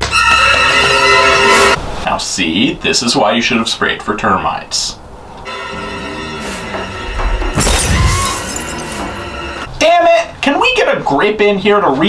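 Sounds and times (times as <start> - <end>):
tense horror music: 5.4 - 9.7
glass shattering crash: 7.5 - 9.3.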